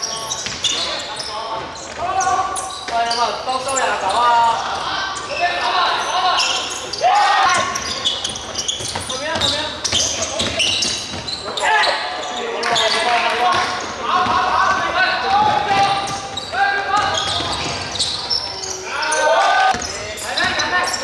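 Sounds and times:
players calling out: 0:00.0 - 0:21.0
sneakers squeaking: 0:00.0 - 0:21.0
basketball bouncing: 0:13.5 - 0:18.0.

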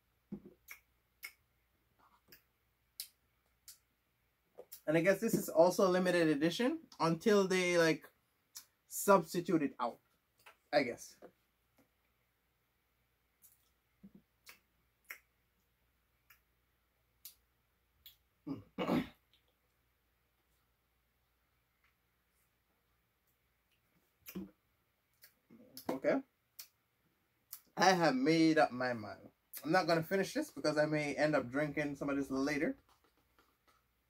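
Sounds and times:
lip smacks and mouth clicks: 0:00.6 - 0:01.4, 0:02.2 - 0:03.9, 0:13.4 - 0:15.4, 0:18.0 - 0:18.3, 0:23.3 - 0:25.9, 0:26.5 - 0:26.8, 0:27.5 - 0:27.7.

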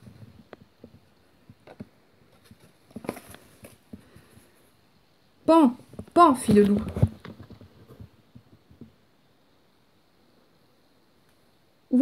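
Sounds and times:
faint rustling: 0:00.0 - 0:04.9.

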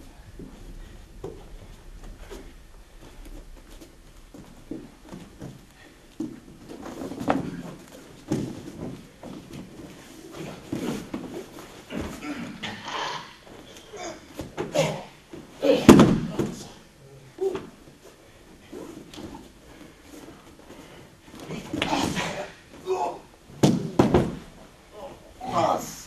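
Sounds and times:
bare feet shuffling on mat: 0:00.0 - 0:12.6
body thudding onto mat: 0:00.4 - 0:12.3, 0:15.7 - 0:16.8, 0:23.5 - 0:24.6
bodies knocking: 0:23.5 - 0:24.7.

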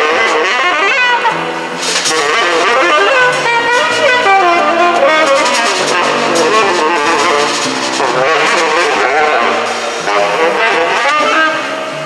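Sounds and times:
plucked double bass: 0:00.0 - 0:12.0
tenor saxophone melody: 0:00.0 - 0:12.0
drums and cymbals: 0:01.6 - 0:11.5.

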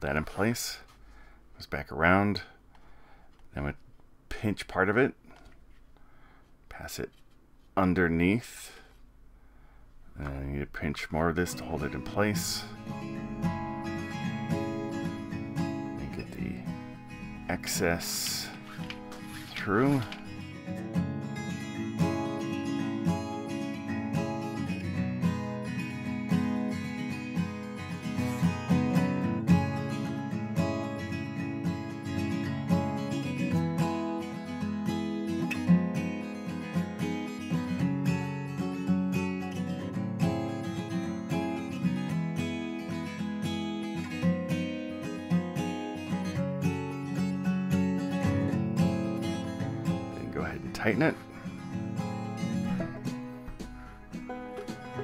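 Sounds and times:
acoustic guitar music: 0:10.2 - 0:55.0.

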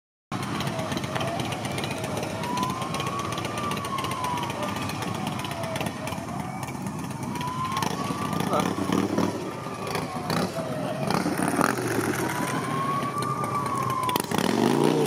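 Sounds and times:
idling and crawling traffic: 0:00.3 - 0:15.0
police sirens wailing: 0:00.3 - 0:15.0.

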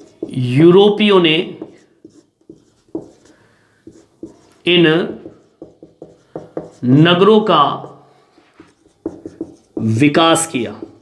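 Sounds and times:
marker writing on whiteboard: 0:00.0 - 0:11.0
man speaking: 0:00.3 - 0:01.8, 0:04.6 - 0:05.4, 0:06.8 - 0:08.0, 0:09.7 - 0:11.0.

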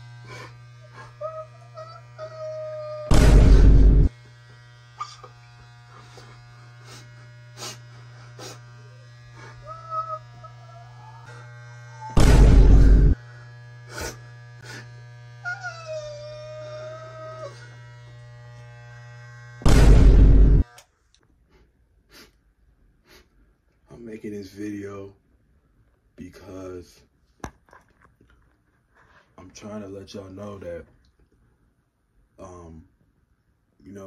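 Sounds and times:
electric hair clippers buzzing: 0:00.0 - 0:21.0.

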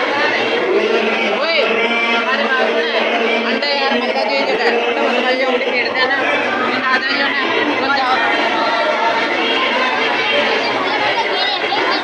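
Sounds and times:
crowd talking: 0:00.0 - 0:12.0.

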